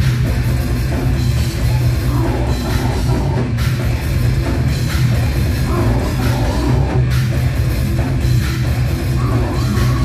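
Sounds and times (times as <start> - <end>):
death metal band playing: 0.0 - 10.0.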